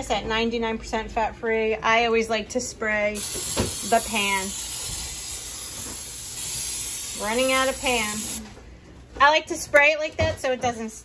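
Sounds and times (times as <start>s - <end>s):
aerosol spray can hissing: 3.2s - 8.4s.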